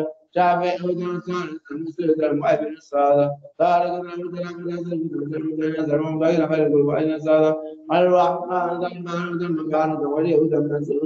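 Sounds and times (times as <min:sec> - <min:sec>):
voice chanting: 0:00.0 - 0:11.0.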